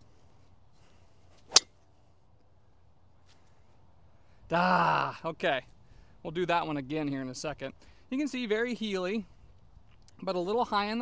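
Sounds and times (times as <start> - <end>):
golf club striking ball: 1.5 - 1.7.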